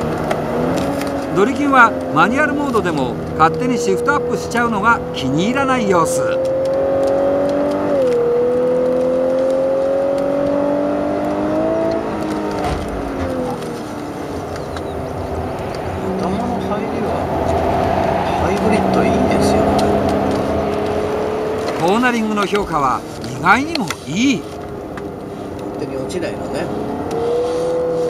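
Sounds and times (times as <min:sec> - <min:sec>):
car engine revving through gears: 0:00.0 - 0:28.0.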